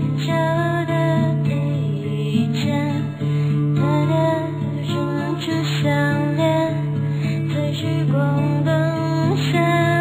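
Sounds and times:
strummed acoustic guitar: 0.0 - 10.0
woman singing: 0.0 - 10.0.

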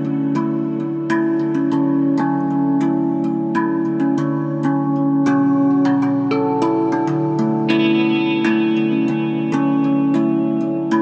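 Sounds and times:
handpan music: 0.0 - 11.0.

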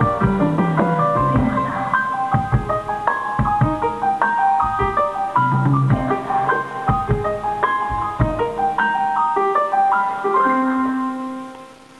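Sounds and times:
bell-like keyboard notes: 0.0 - 11.6.

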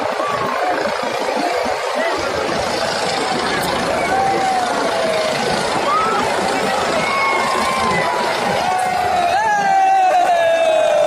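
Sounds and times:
helicopter flying overhead: 0.0 - 11.0
large crowd shouting: 0.0 - 11.0.

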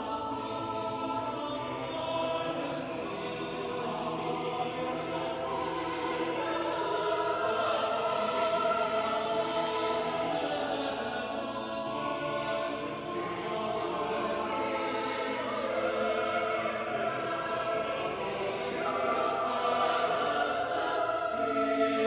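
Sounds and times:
choir singing: 0.0 - 22.0.

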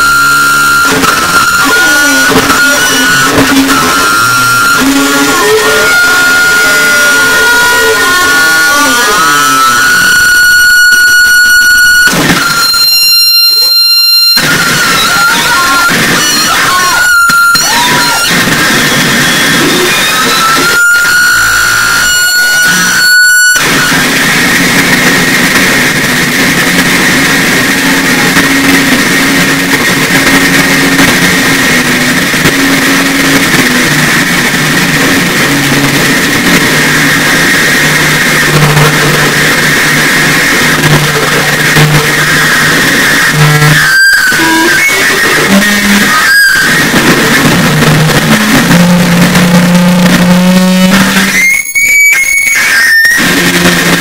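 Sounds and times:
distorted noise music: 0.0 - 54.0
low drones: 0.0 - 54.0
steady high whine: 0.0 - 54.0.

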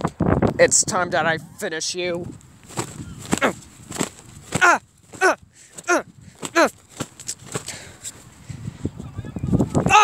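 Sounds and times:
rustling plush toys: 2.6 - 8.3.

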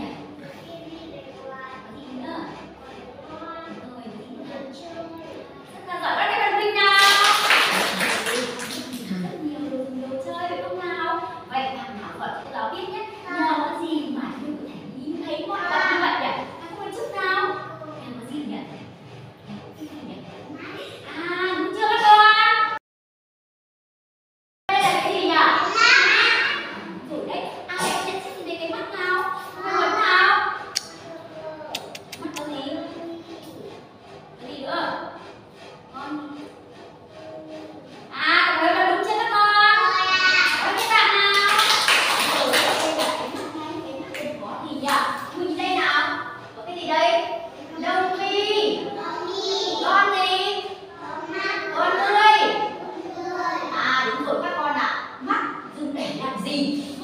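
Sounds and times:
children clapping: 7.0 - 9.2, 40.2 - 43.6
young children murmuring: 24.8 - 28.6, 29.2 - 34.2, 39.8 - 40.8, 47.4 - 54.3.

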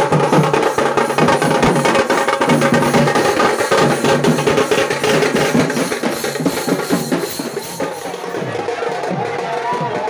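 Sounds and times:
drummers beating side and bass drums: 0.0 - 10.0.

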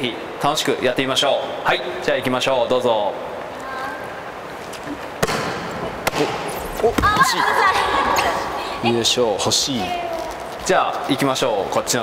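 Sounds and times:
volleyball slapped by hand: 5.2 - 6.4.

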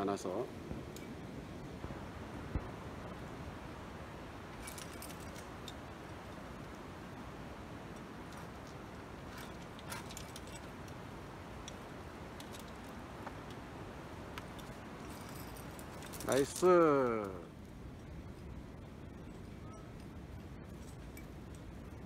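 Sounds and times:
steady background hiss: 0.0 - 22.0
climbing hardware clinking: 4.5 - 6.4, 7.9 - 13.7, 14.4 - 17.5.

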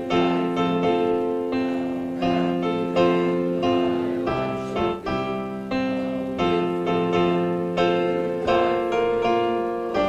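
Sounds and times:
piano playing hymn chords: 0.0 - 10.0.

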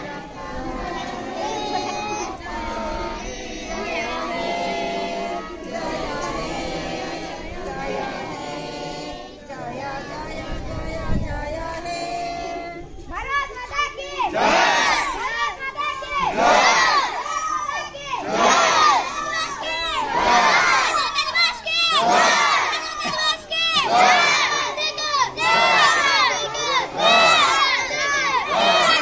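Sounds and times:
children shouting in unison: 13.4 - 29.0.

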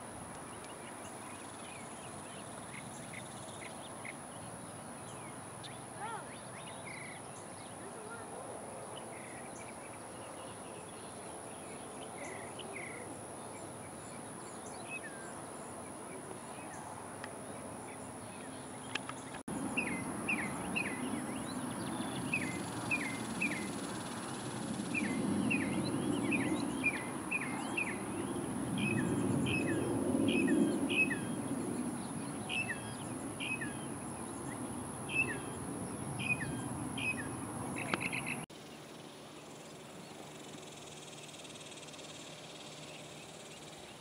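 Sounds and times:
low outdoor background noise: 0.0 - 44.0.

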